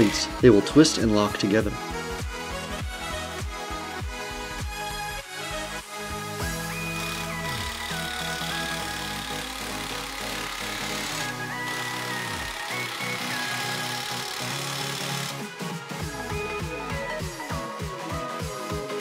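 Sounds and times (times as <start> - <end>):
background music with sliding bass: 0.0 - 19.0.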